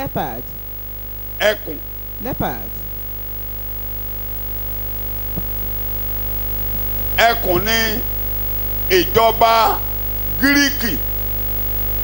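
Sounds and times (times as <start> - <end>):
person speaking: 0.0 - 0.6, 1.4 - 2.8, 7.2 - 8.1, 8.9 - 11.1
electrical mains hum: 0.0 - 12.0.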